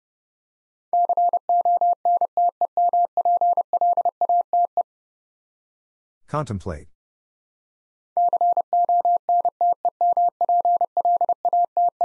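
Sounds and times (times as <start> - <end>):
morse code tone: 1.0 - 4.7, 8.2 - 12.0.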